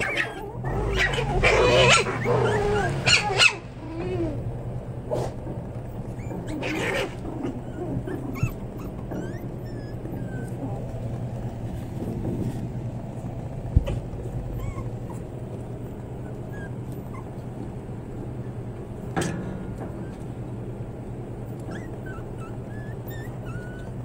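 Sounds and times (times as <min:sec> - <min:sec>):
puppies whimpering and squeaking: 0:00.0 - 0:04.7, 0:05.7 - 0:19.1, 0:19.8 - 0:24.0
steady low hum: 0:00.0 - 0:24.0.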